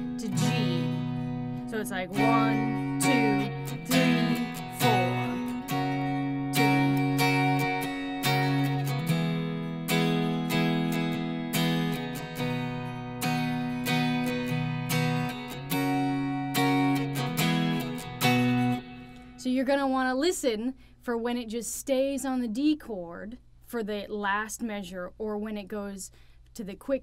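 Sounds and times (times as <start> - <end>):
electric guitar strumming chords: 0.0 - 19.4.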